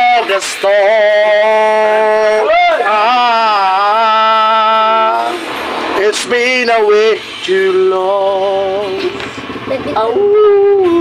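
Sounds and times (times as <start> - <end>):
man singing a long held note: 0.0 - 9.2.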